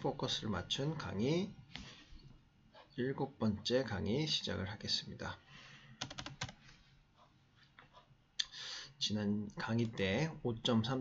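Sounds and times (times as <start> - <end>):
keyboard keystrokes: 6.0 - 6.6.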